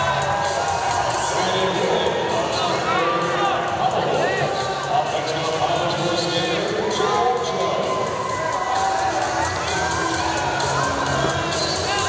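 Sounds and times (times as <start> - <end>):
voices chattering: 9.1 - 12.0.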